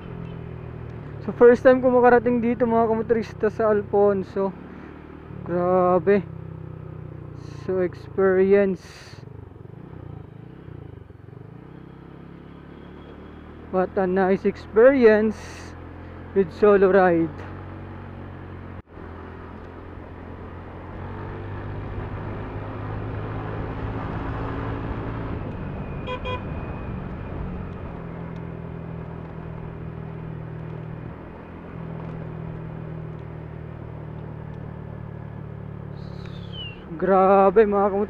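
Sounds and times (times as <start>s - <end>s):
road and wind noise: 0.0s - 38.0s
short horn beep: 25.9s - 26.6s.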